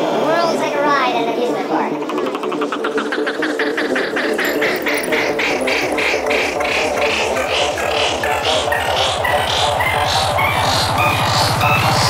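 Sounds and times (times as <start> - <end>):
fast synth pulse: 1.9 - 12.0
low bass beats: 2.3 - 12.0.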